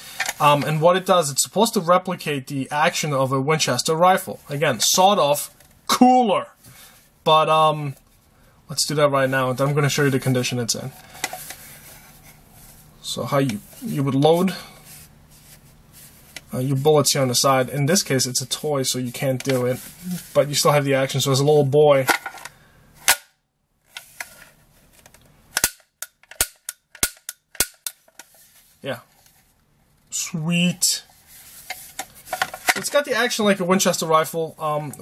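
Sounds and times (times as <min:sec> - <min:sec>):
faint background hiss: 0:00.0 - 0:25.6, 0:27.9 - 0:35.0
plastic toy rifle clicking: 0:25.6 - 0:27.9.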